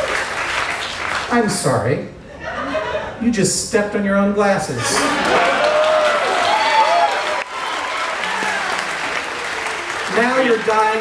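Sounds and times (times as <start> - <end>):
audience applauding: 0.0 - 1.3, 4.9 - 11.0.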